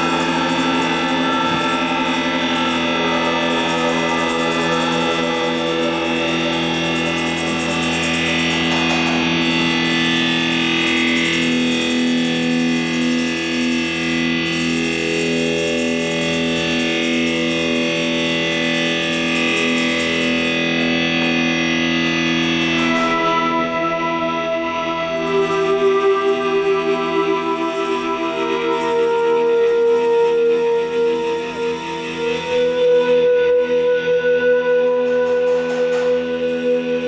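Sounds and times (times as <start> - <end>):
sustained electric guitar: 0.0 - 37.0.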